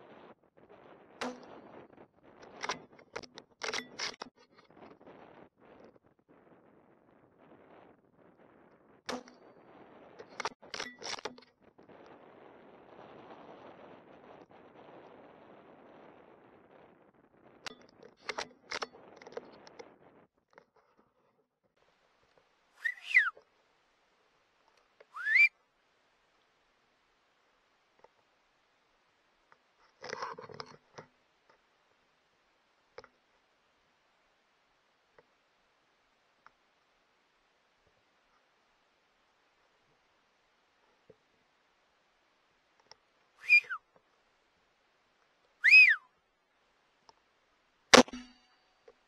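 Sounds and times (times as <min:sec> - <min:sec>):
short loud whistles: 0:22.8 - 0:23.4, 0:25.1 - 0:25.6, 0:43.4 - 0:43.8, 0:45.6 - 0:46.1.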